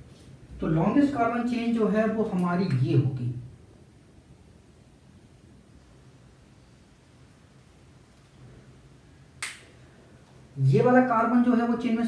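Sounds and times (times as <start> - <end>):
faint low hum: 0.0 - 12.0
sharp click: 9.4 - 9.7.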